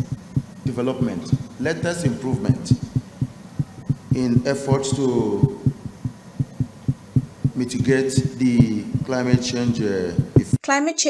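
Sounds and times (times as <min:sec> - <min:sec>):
low thumping beat: 0:00.0 - 0:10.6.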